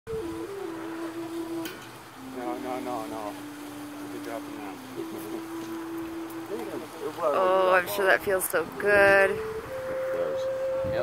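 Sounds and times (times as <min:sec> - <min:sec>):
person singing long notes: 0:00.1 - 0:07.6.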